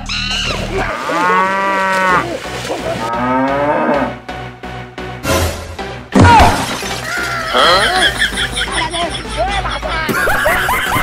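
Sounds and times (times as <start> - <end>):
animal mooing call: 0.8 - 2.3.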